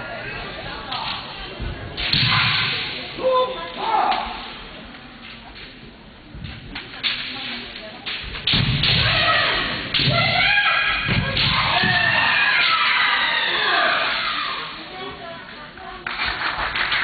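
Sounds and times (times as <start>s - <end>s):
bamboo swords clacking: 6.4s - 10.4s.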